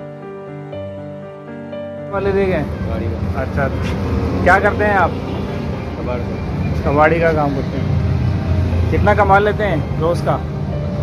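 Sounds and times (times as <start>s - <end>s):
street traffic rumble: 2.1s - 11.0s.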